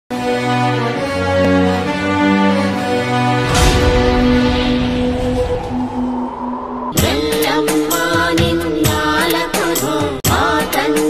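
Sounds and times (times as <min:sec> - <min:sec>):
sustained drone: 0:03.4 - 0:07.9
percussion strikes: 0:03.4 - 0:09.1.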